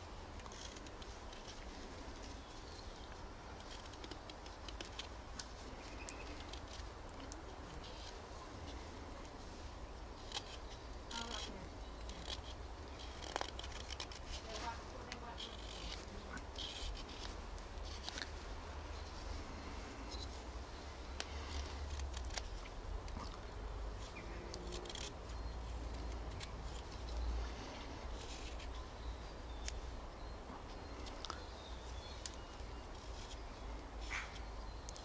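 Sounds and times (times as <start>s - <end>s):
whittling knife scraping wood: 10.2s - 18.3s.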